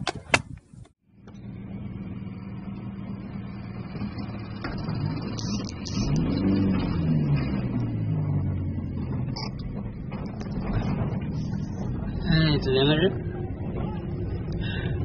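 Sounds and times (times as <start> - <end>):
engine running and revving: 1.1 - 15.0.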